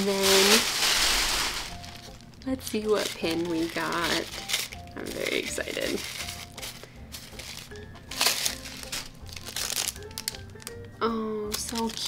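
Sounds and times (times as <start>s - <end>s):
plastic wrapping crinkling: 0.0s - 12.0s
soft background music: 0.0s - 12.0s.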